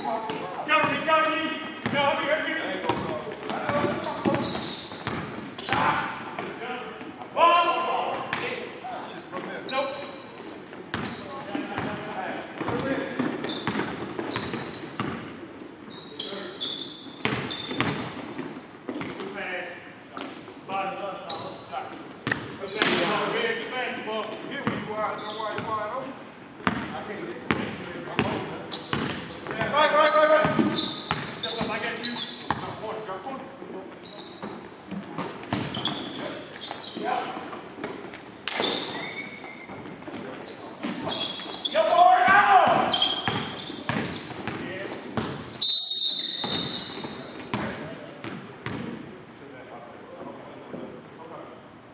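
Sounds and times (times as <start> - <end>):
sneakers squeaking: 0.0 - 23.4, 24.3 - 49.1
players shouting: 41.7 - 43.2.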